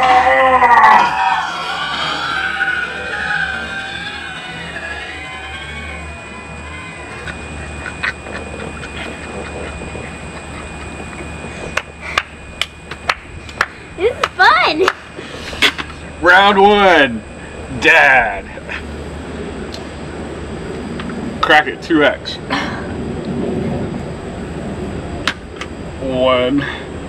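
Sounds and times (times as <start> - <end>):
laughter: 7.1 - 11.8.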